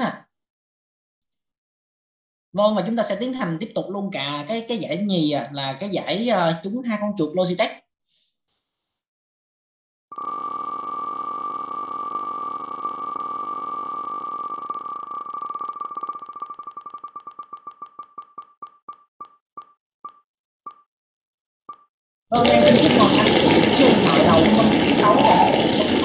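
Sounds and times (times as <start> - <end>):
prize wheel ticking: 10.2 - 20.8.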